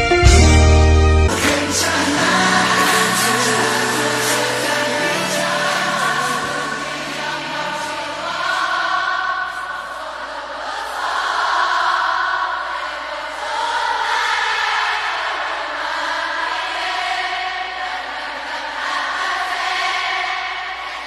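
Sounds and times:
low musical accompaniment: 0:00.0 - 0:08.0
choir singing pop ballad: 0:00.1 - 0:21.0.

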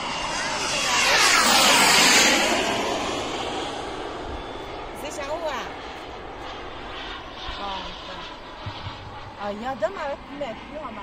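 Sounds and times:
model jet engine rush: 0:00.0 - 0:11.0.

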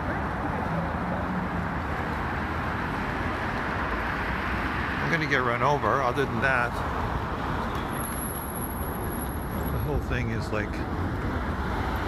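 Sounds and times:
cars passing on road: 0:00.0 - 0:12.0.

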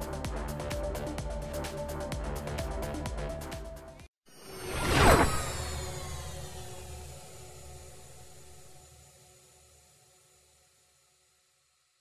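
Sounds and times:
whoosh hit: 0:04.4 - 0:08.7
low hum: 0:04.4 - 0:08.8.

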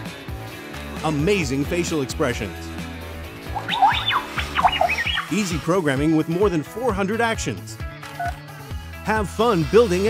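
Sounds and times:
background music: 0:00.0 - 0:10.0
toy robot electronic chirps: 0:03.5 - 0:05.4, 0:08.2 - 0:08.4.

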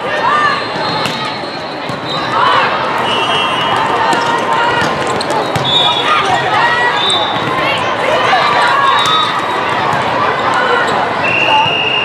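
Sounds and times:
volleyball hits and bounces: 0:03.6 - 0:06.6.

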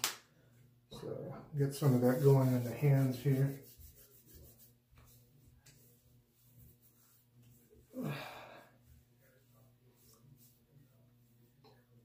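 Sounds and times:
hands rubbing skin: 0:01.7 - 0:07.9.

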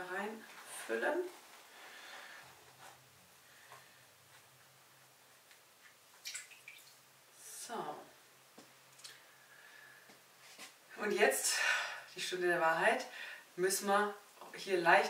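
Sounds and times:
water dripping and trickling: 0:05.8 - 0:07.1.

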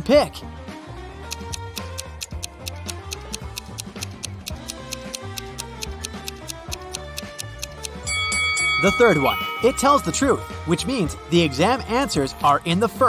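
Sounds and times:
background music: 0:00.0 - 0:13.0
clock-like ticking: 0:01.3 - 0:08.1.

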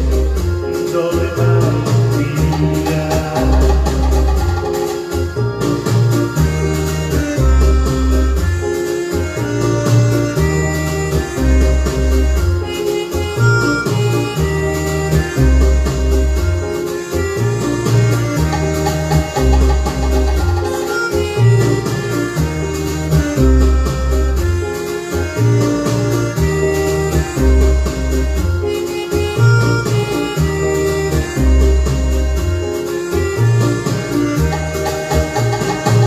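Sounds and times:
instrumental backing track: 0:00.0 - 0:36.0
repeating bass line: 0:00.0 - 0:36.0.

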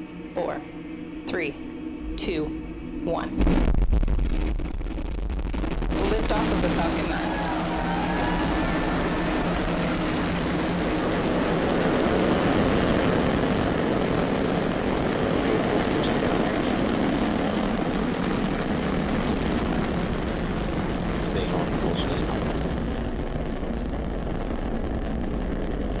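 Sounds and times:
rocket exhaust roar: 0:00.0 - 0:26.0.

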